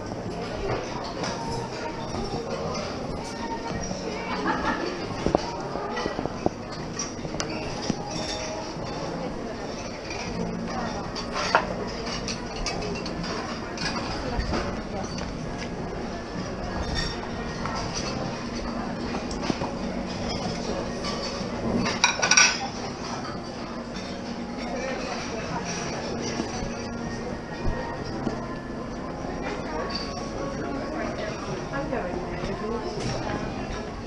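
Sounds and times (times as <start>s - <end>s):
murmur of voices: 0.0s - 34.0s
clinks of crockery and cutlery: 0.3s - 28.4s, 29.0s - 31.6s.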